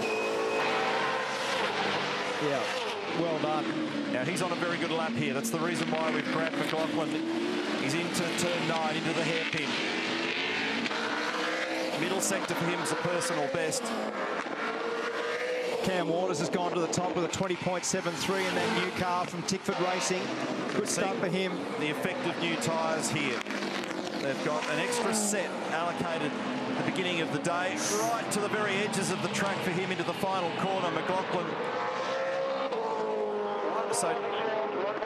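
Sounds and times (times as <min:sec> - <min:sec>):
race car engine at speed: 0:00.0 - 0:35.0.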